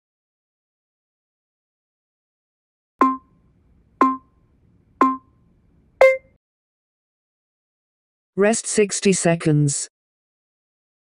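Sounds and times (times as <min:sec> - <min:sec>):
timer countdown beeps: 0:03.0 - 0:03.4, 0:04.0 - 0:04.3, 0:05.0 - 0:05.3, 0:06.0 - 0:06.4.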